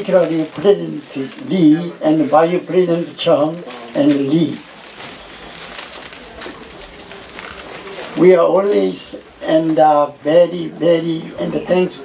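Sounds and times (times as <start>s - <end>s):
faint indistinct voices: 0.0s - 12.0s
room noise: 0.0s - 12.0s.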